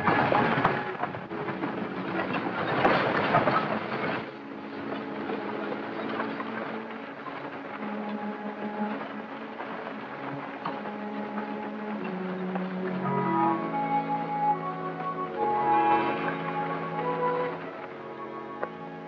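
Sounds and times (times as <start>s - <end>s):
horse-drawn stagecoach rattling: 0.0s - 19.0s
orchestral film music: 0.0s - 19.0s.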